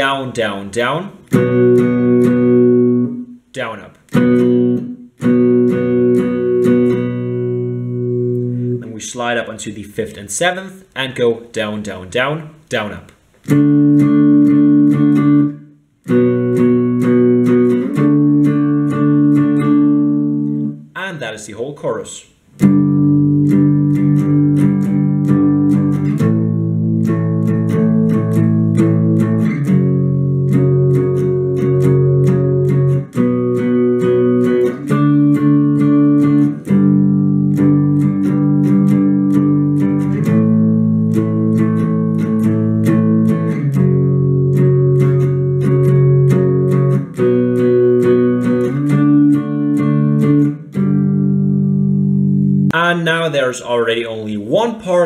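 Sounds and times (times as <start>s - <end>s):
electric guitar strumming power chords: 1.2s - 8.9s, 13.4s - 20.8s, 22.6s - 53.3s.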